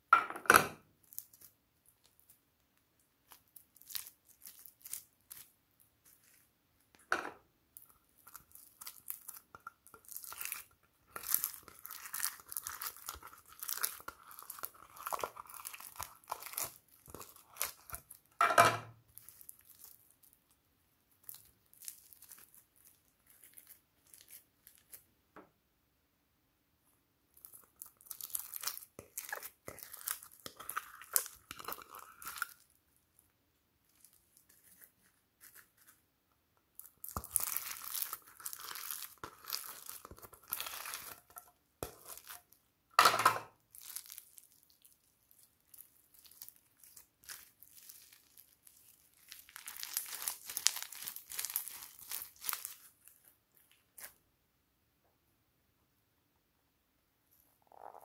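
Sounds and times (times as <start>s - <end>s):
foam slime crackling and popping: 3.2s - 6.5s, 7.7s - 18.4s, 21.1s - 25.0s, 27.4s - 32.8s, 36.7s - 42.6s, 43.7s - 54.2s.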